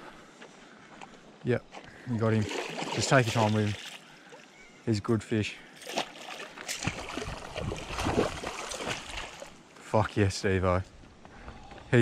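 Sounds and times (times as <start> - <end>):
fish thrashing and splashing water: 2.4 - 4.1, 5.8 - 9.6.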